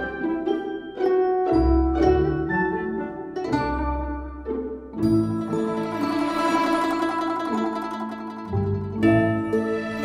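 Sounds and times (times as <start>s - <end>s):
orchestral string pizzicato: 0.0s - 10.0s
plucked string instruments: 0.0s - 10.0s.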